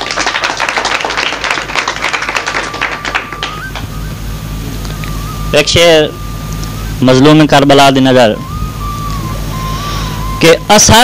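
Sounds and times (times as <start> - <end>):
audience applauding: 0.0 - 4.1
thin steady high tone: 2.4 - 11.0.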